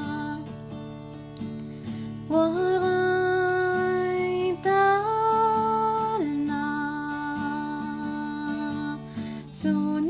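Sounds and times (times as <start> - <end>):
plucked acoustic guitar: 0.0 - 10.0.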